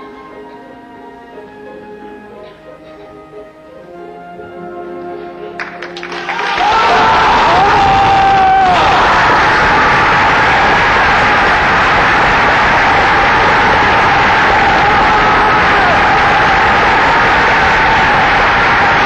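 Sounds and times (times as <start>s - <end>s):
orchestra holding notes: 0.0s - 6.3s
audience applause: 5.6s - 19.0s.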